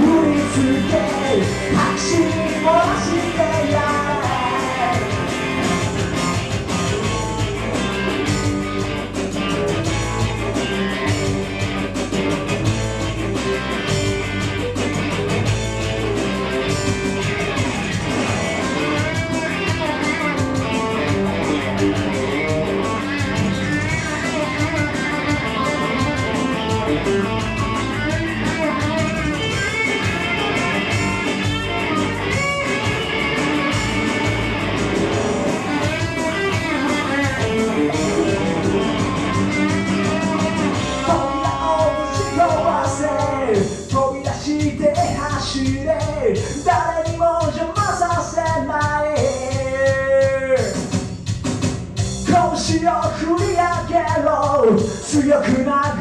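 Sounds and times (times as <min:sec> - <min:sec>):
live electric guitar music: 0:00.0 - 0:56.0.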